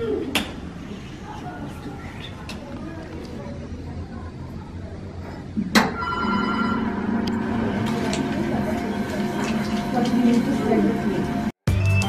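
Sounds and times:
potter's wheel motor humming: 6.1 - 11.6.

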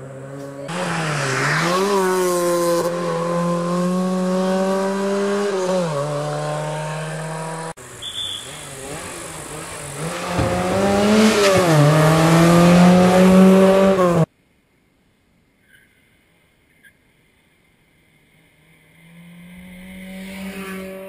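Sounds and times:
rally car engine revving: 0.0 - 7.8, 8.4 - 14.3, 18.7 - 21.0.

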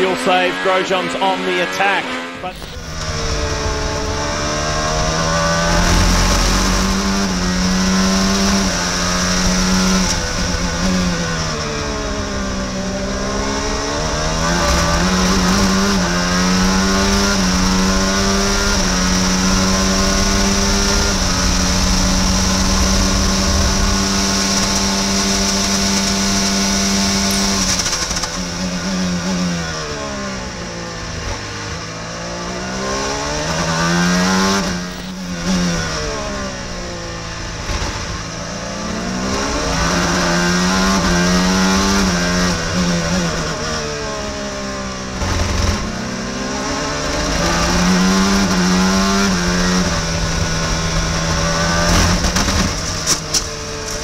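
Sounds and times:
race car engine at high revs: 0.0 - 54.0
wind rush: 2.4 - 16.4.

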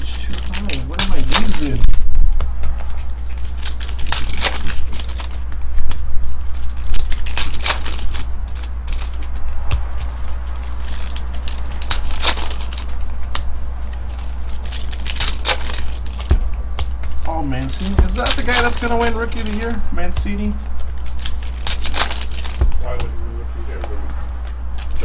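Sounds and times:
foil wrappers tearing and crinkling: 0.0 - 23.1, 24.3 - 25.0
steady low hum: 0.0 - 25.0.

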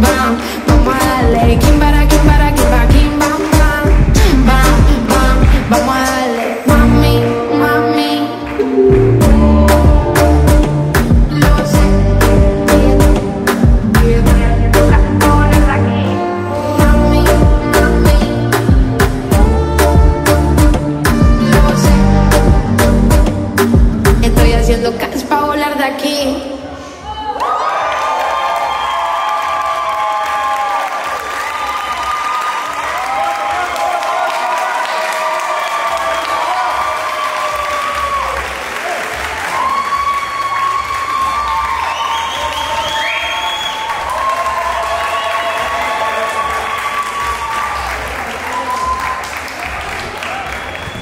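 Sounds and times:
audience cheering and whooping: 27.0 - 51.0
audience applauding: 27.4 - 51.0.

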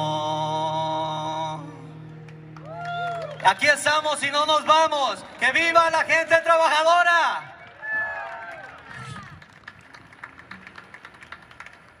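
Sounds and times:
crowd clapping: 2.2 - 12.0.

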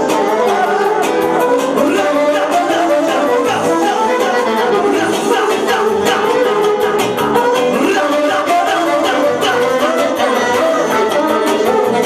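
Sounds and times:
live band dance music: 0.0 - 12.0
person singing: 0.0 - 12.0.

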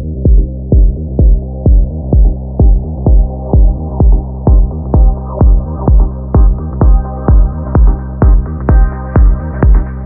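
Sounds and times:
muffled psytrance music: 0.0 - 10.0.

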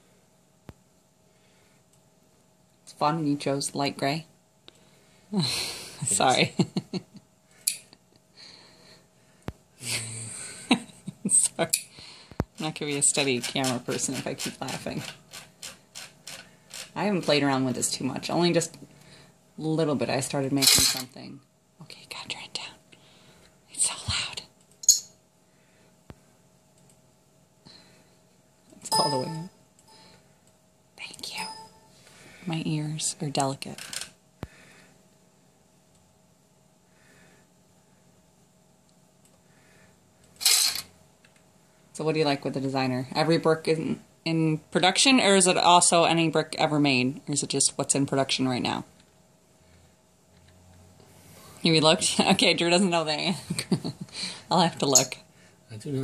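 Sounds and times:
person speaking: 6.0 - 6.5, 28.8 - 29.5
high-pitched sound effect burst: 28.9 - 29.5.

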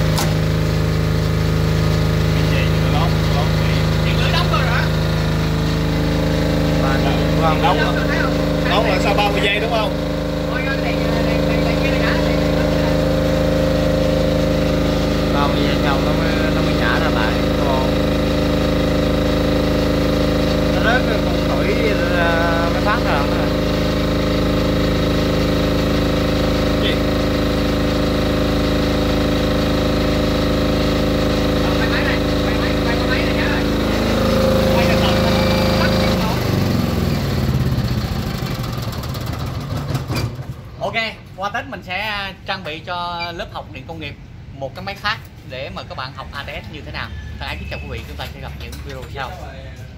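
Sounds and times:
generator engine running: 0.0 - 44.5.

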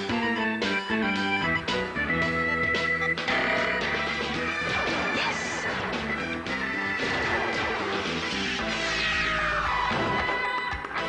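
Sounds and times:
cartoon theme music: 0.0 - 11.0
crashing and smashing effects: 3.2 - 11.0.

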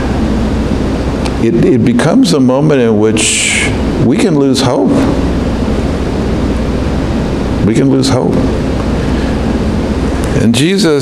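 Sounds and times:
steady low rumbling: 0.0 - 11.0.

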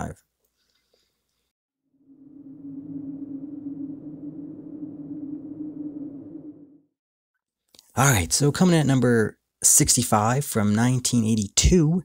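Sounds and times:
low dark drone: 2.0 - 7.0.

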